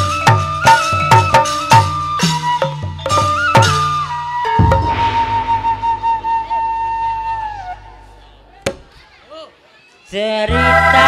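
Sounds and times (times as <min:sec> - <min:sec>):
flute holding long note: 0:00.0 - 0:08.5
low drone: 0:04.6 - 0:08.6.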